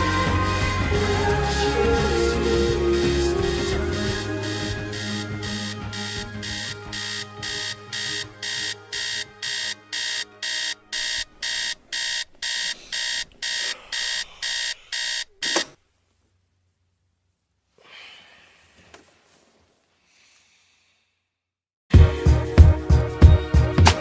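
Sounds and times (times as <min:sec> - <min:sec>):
song: 0:00.0 - 0:12.2
electronic alarm beeping: 0:02.4 - 0:15.8.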